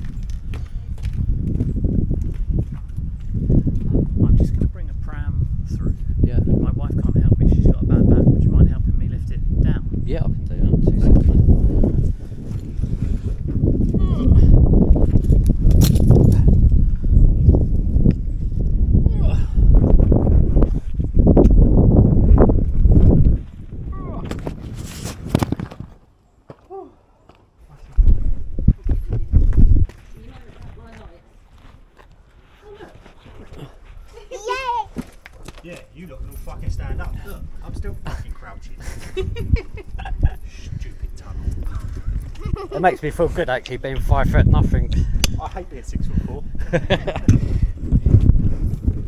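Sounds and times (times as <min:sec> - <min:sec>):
footsteps on stone path: 0:00.0 - 0:04.7, 0:22.0 - 0:37.9, 0:41.1 - 0:44.1, 0:47.0 - 0:49.0.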